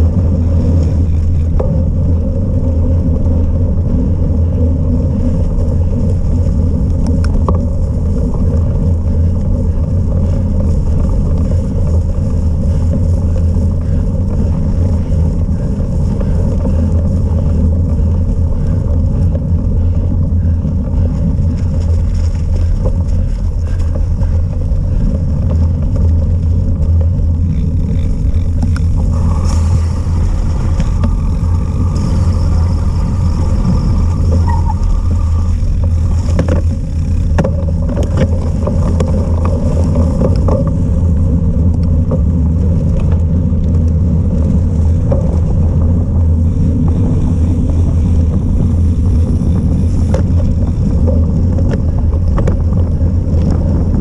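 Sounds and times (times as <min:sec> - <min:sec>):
bike tyres rumbling on dirt: 0:00.0 - 0:54.0
wind buffeting microphone: 0:00.0 - 0:54.0.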